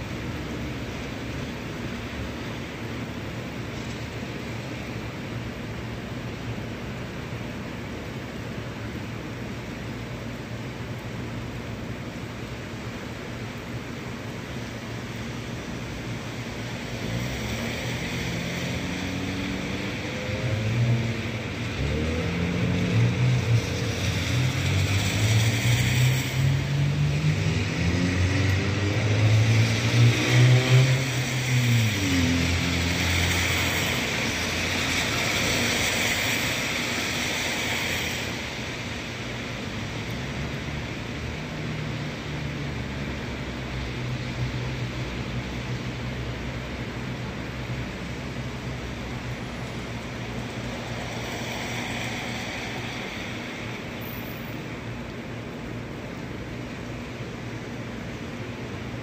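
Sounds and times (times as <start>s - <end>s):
rain hissing: 0.0s - 59.0s
engine passing by: 16.8s - 46.0s, 47.6s - 54.9s.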